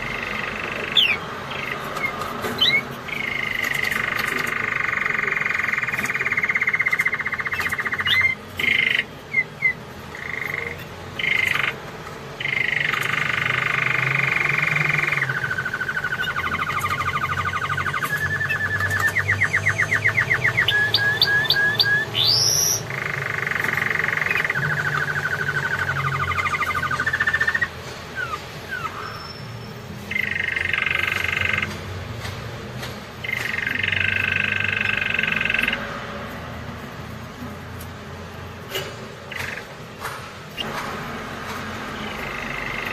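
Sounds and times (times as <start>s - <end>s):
canary singing trills: 0.0s - 32.2s, 33.1s - 40.8s, 41.6s - 42.9s.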